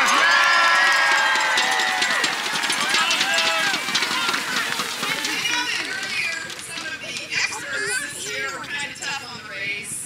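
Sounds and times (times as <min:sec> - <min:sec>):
voices whooping and yelling: 0:00.0 - 0:06.4
crowd cheering and clapping: 0:00.0 - 0:08.2.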